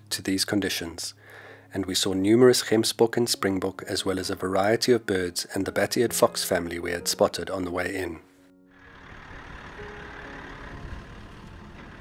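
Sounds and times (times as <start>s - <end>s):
vehicle engine rumbling: 8.7s - 12.0s.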